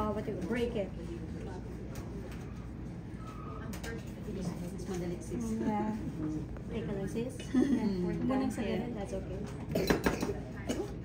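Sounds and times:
low background chatter: 0.0s - 11.0s.

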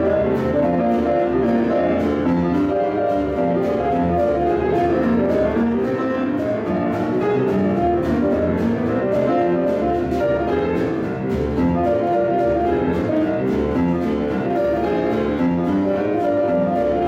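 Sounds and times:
boogie-woogie piano: 0.0s - 17.0s.

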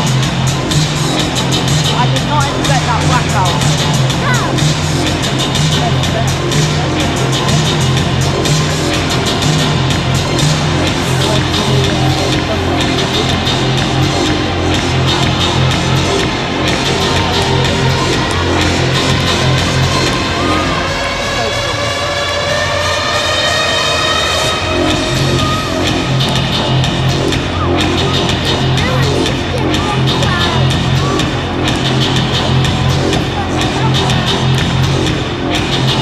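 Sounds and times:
crowd cheering: 0.0s - 36.0s
electronic music with heavy bass: 0.0s - 36.0s.

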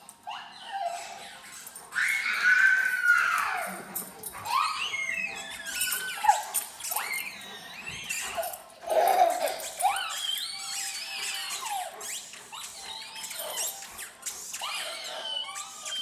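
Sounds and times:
toddler shrieking with laughter: 1.9s - 12.0s.

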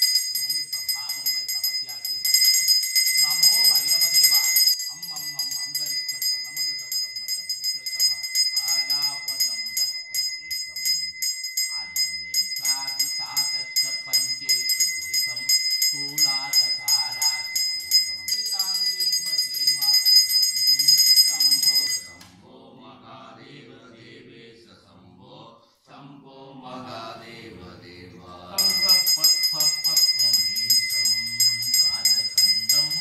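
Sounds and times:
hand bell ringing rapidly: 0.0s - 22.2s, 28.6s - 33.0s
person chanting: 3.2s - 20.1s, 20.7s - 33.0s.

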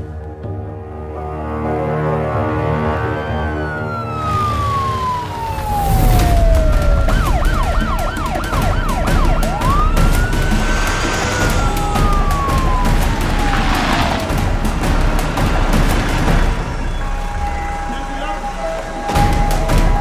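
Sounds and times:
police siren wailing and yelping: 2.9s - 14.8s.

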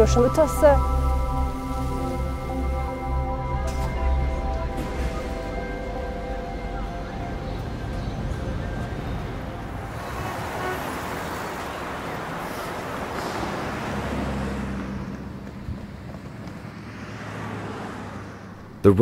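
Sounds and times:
low engine hum: 0.0s - 19.0s
passing cars: 0.0s - 19.0s.

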